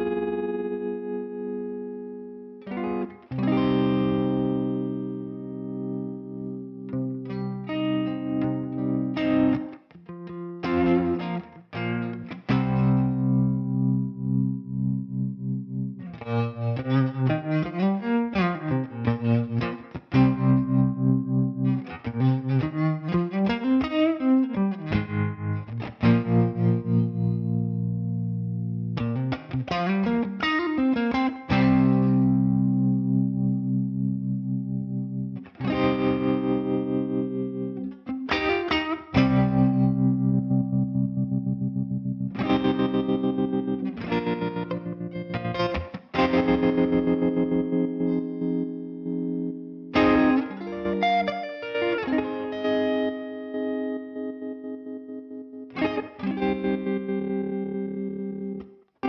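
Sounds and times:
electric guitar with tremolo: 0.0 - 59.0.

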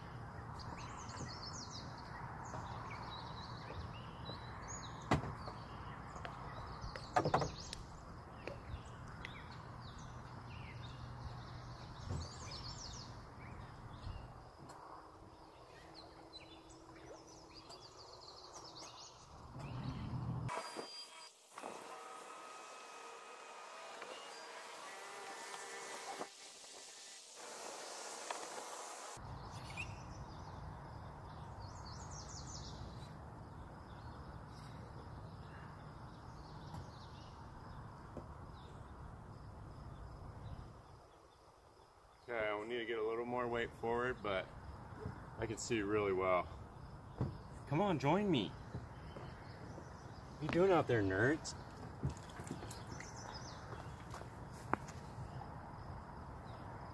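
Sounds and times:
small birds chirping: 0.0 - 26.2, 26.8 - 56.9
thin hiss: 25.2 - 29.2.

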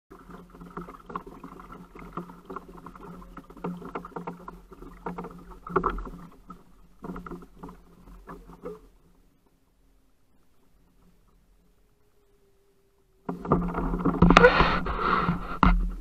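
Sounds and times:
small clicks and knocks from reel: 0.1 - 9.6, 13.0 - 16.0.

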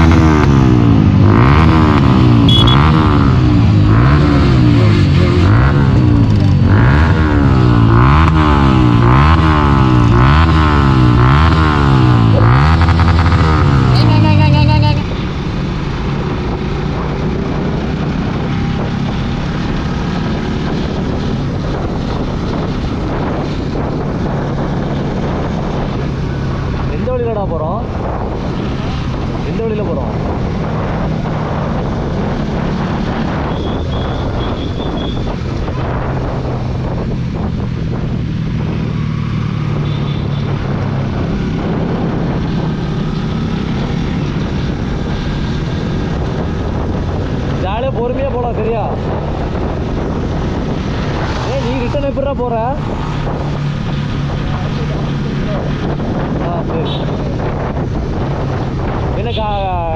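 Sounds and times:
motorcycle engine running: 0.0 - 59.9
wind buffeting microphone: 15.0 - 59.9.

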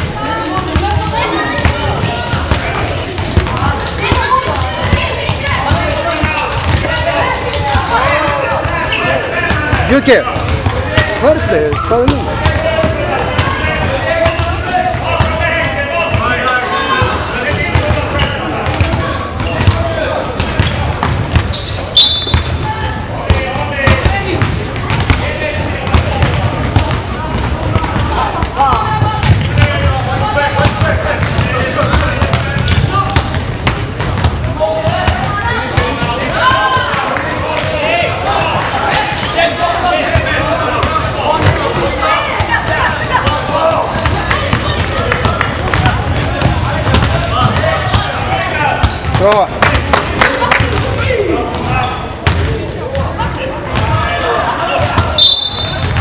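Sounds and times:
voices of players and spectators: 0.0 - 56.0
basketball bouncing on floor: 0.7 - 7.0, 9.5 - 14.5, 16.9 - 21.5, 23.3 - 36.1, 44.0 - 48.1, 54.8 - 56.0.

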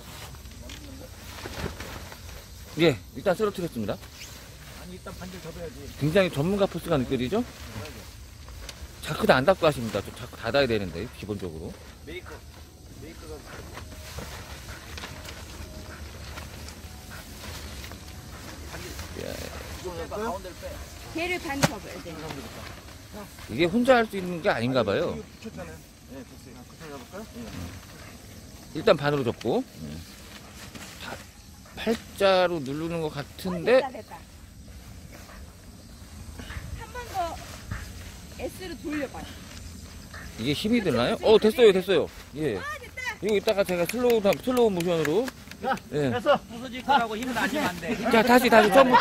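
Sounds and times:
nylon fabric rustling and crinkling: 0.0 - 44.2, 45.1 - 49.0
quiet talk: 0.2 - 49.0.

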